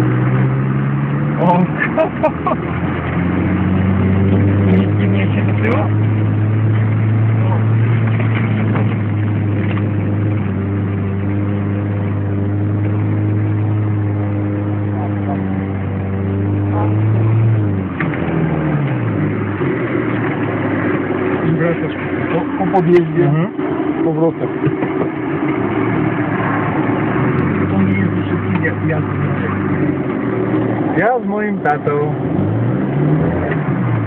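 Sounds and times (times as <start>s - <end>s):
vehicle engine from inside cabin: 0.0s - 34.0s.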